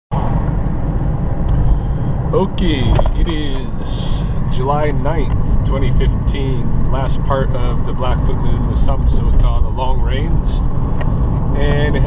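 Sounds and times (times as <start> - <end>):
car road and engine noise: 0.1 - 12.0.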